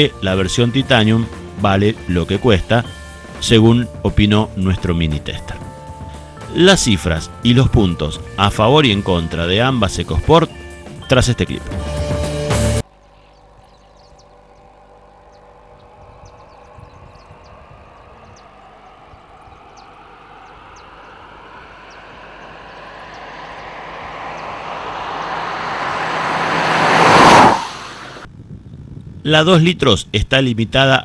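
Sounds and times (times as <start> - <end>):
car passing at speed: 14.1 - 28.3.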